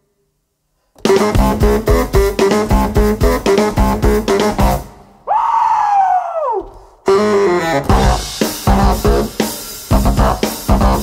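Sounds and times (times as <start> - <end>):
drum kit: 1.0 - 5.0, 6.6 - 11.0
baritone saxophone sliding note: 7.0 - 9.3.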